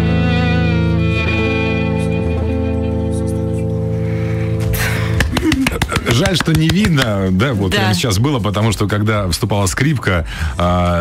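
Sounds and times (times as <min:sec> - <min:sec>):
violin and acoustic guitar chord: 0:00.0 - 0:03.3.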